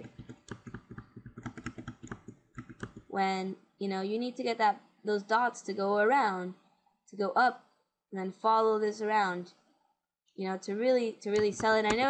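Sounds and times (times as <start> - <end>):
computer keyboard typing: 0.0 - 3.1, 11.3 - 12.0.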